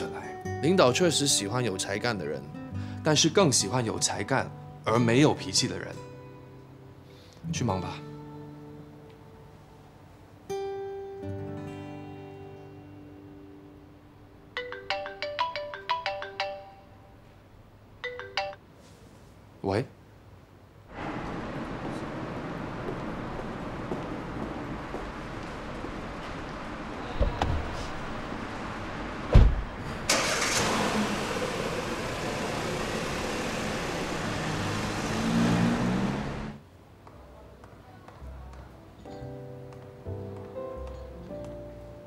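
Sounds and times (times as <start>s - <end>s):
phone ringtone melody: 14.6s - 17.0s, 18.0s - 18.6s
car door shutting: 29.3s - 29.8s
car engine running: 30.1s - 36.6s.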